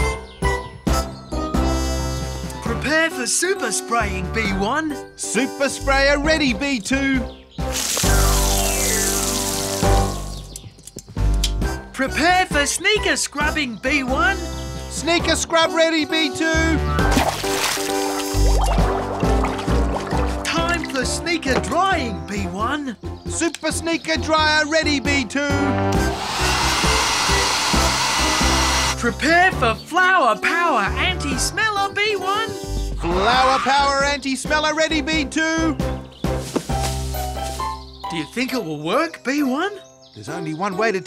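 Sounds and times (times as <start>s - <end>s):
background music: 0.0s - 41.0s
cartoon hose spraying water hiss: 7.7s - 10.5s, 17.3s - 20.4s, 26.0s - 29.0s, 36.4s - 37.8s
hair dryer blowing: 26.0s - 29.0s.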